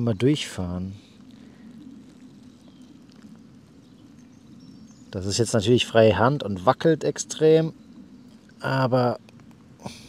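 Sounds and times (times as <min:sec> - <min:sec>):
soft ticks: 0:09.2 - 0:09.7.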